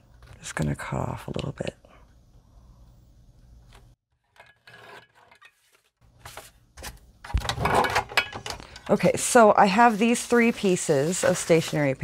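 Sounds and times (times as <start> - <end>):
paper rustling: 5.5 - 7.0, 9.1 - 12.0.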